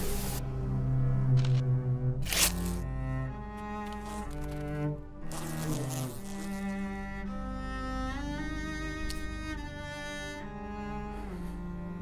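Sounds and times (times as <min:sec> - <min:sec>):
slow cello melody: 0:00.0 - 0:12.0.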